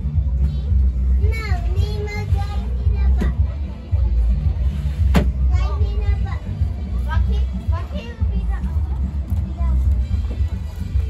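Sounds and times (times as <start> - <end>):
child singing: 1.2 - 3.5.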